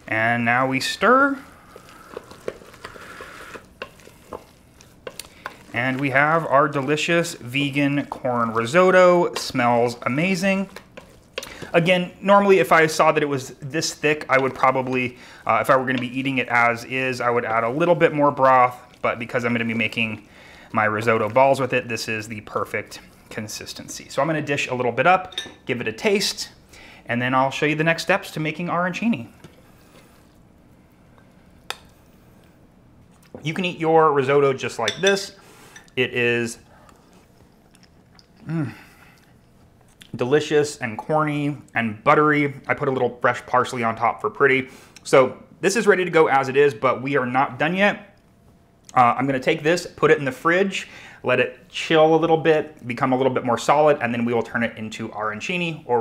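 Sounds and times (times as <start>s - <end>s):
rice squishing: 0.0s - 24.5s.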